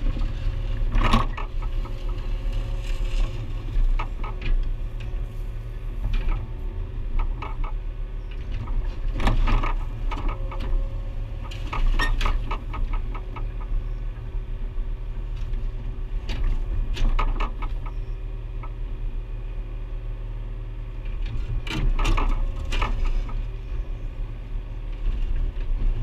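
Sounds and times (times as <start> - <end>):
diesel engine running: 0.0 - 26.0.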